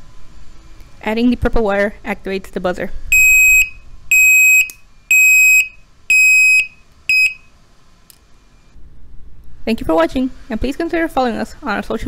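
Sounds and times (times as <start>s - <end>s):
high-pitched buzzer beeps: 3.1s - 7.4s.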